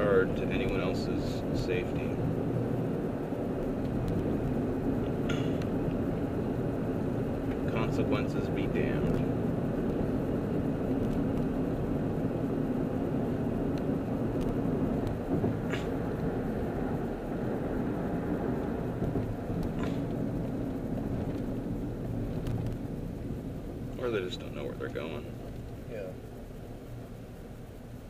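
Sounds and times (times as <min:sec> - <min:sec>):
car road and engine rumble: 0:00.0 - 0:28.0.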